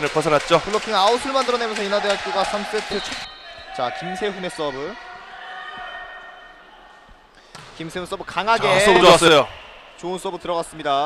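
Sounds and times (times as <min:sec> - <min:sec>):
man commentating: 0:08.5 - 0:09.5.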